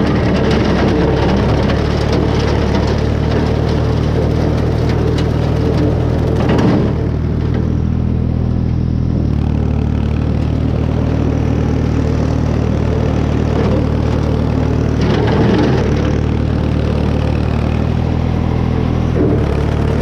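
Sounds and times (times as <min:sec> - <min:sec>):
tractor engine running: 0:00.0 - 0:20.0.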